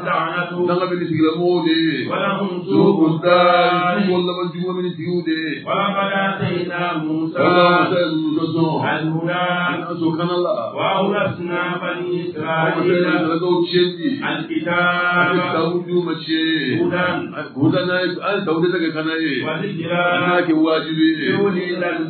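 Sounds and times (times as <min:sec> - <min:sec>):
voices chanting: 0:00.0 - 0:01.3, 0:01.9 - 0:04.3, 0:05.6 - 0:15.9, 0:16.6 - 0:17.6, 0:19.4 - 0:22.0.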